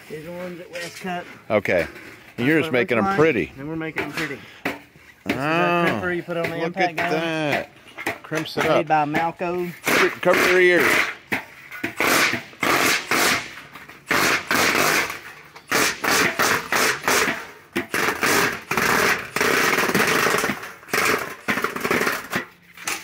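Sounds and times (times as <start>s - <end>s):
impact driver hammering: 4.0s - 23.0s.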